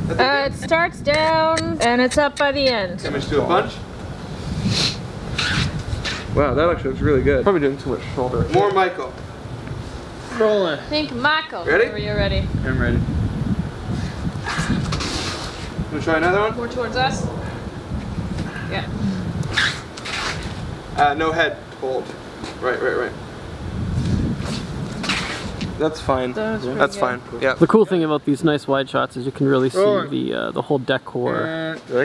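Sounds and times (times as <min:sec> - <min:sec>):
wind rumble on microphone: 0:00.0 - 0:21.6, 0:22.7 - 0:27.6
brief hiss: 0:14.4 - 0:15.7
short hissing scuffs: 0:14.4 - 0:15.8, 0:24.4 - 0:25.7.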